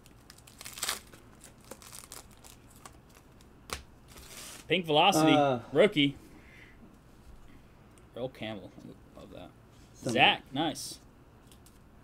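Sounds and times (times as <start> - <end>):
wrapper crinkling and tearing: 0.0 - 3.4, 4.1 - 4.7.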